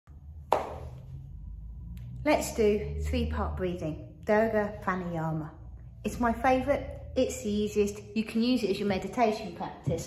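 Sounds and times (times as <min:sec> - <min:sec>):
low steady rumble: 0:00.1 - 0:10.0.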